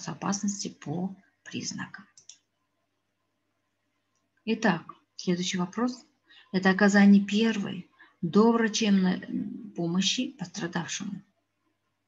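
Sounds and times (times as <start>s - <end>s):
faint computer mouse clicks: 1.4s - 2.5s.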